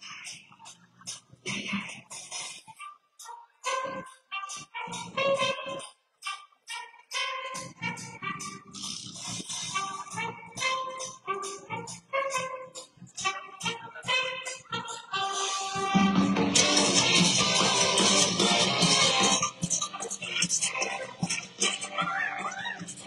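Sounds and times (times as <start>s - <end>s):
drum kit fast beat: 8.0s - 12.5s, 15.4s - 23.0s
live rock band playing: 15.4s - 19.6s.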